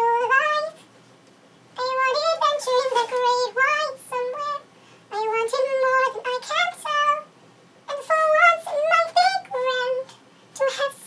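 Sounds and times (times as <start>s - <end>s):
woman singing unaccompanied: 0.0s - 0.9s, 1.8s - 7.3s, 7.9s - 11.0s.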